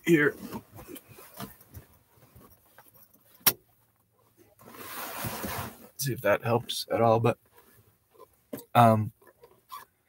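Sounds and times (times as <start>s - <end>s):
board rustling and rubbing: 4.6s - 5.9s.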